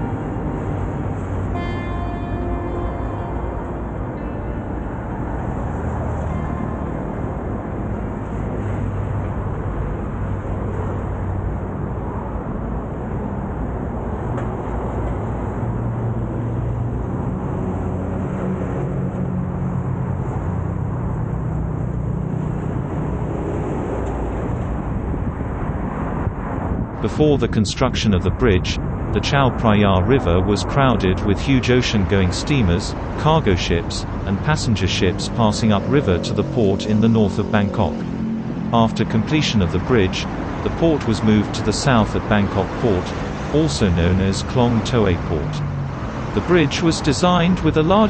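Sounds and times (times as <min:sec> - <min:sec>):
faint music: 0:00.0 - 0:08.7
low droning undertone: 0:00.0 - 0:09.0, 0:33.4 - 0:46.8
car traffic passing: 0:00.0 - 0:48.0.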